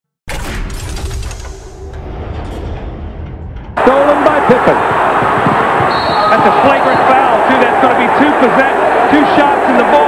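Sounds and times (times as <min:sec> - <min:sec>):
arena crowd noise: 0:03.8 - 0:10.0.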